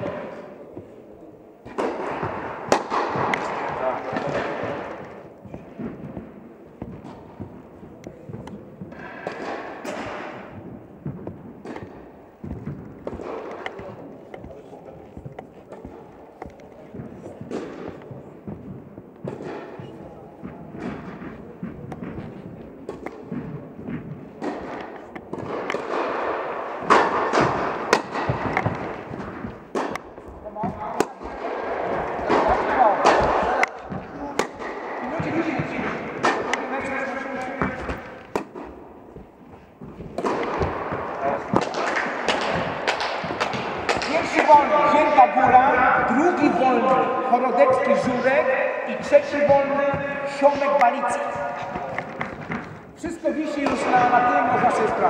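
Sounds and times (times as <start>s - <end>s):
people talking: 0.0s - 6.0s, 11.7s - 18.6s, 19.3s - 25.6s, 30.2s - 38.2s, 40.1s - 42.6s, 43.5s - 52.4s, 53.0s - 55.0s
ball bouncing on court: 1.6s - 55.0s
tennis racket hitting ball: 1.6s - 55.0s.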